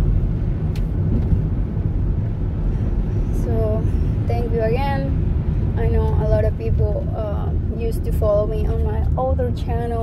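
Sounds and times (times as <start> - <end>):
car road and engine rumble: 0.0 - 10.0
woman speaking: 3.4 - 5.2, 5.8 - 10.0.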